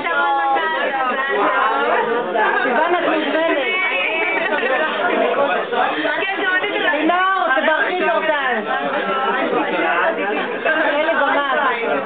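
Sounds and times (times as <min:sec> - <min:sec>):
people chattering: 0:00.0 - 0:12.0.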